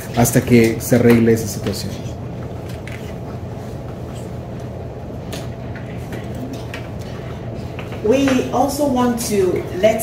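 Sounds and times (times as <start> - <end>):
background room noise: 0.0 - 10.0
steady low hum: 0.0 - 10.0.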